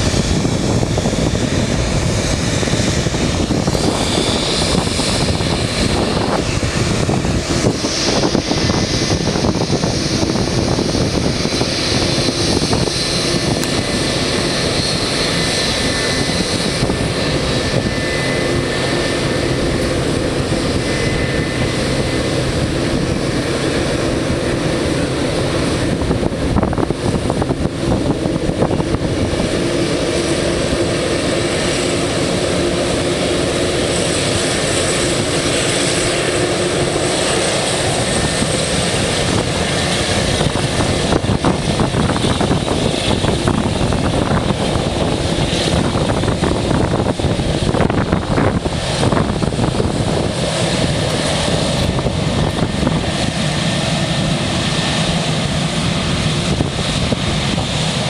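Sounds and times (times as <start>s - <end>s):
jet engines running: 0.0s - 58.0s.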